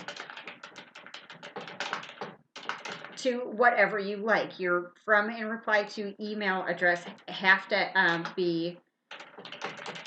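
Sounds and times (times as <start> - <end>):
fast keyboard typing: 0.0 - 3.5, 9.1 - 10.0.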